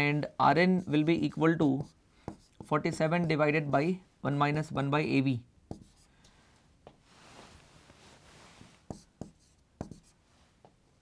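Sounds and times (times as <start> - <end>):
marker rubbing on whiteboard: 0.5 - 3.7, 5.7 - 6.1, 8.5 - 10.2.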